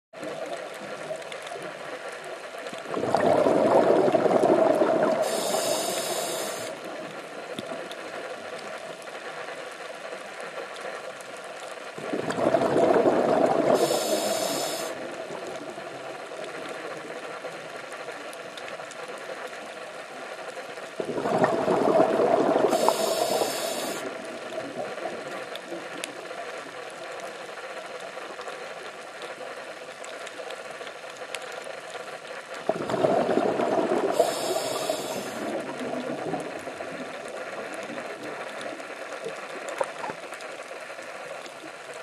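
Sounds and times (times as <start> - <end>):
steady underwater hiss: 0.2 - 42.0
rush of exhaled bubbles: 2.8 - 7.8, 12.0 - 16.6, 21.0 - 26.0, 32.6 - 40.2
diver breathing through regulator: 5.1 - 6.8, 13.6 - 15.0, 22.6 - 24.1, 34.0 - 35.6.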